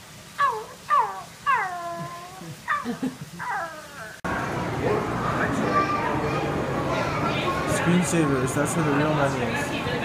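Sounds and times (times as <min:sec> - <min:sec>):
person imitating meow cries: 0:00.4 - 0:04.2.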